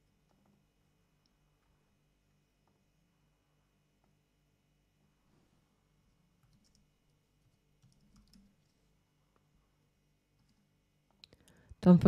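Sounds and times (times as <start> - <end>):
computer keyboard and mouse clicks: 6.4 - 8.8
woman narrating: 11.8 - 12.0.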